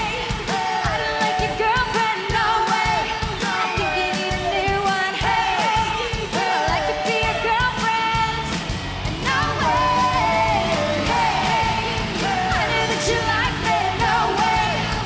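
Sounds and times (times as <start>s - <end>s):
drum beat: 0.0s - 15.0s
sung vocals: 0.0s - 15.0s
electric guitars: 8.2s - 15.0s.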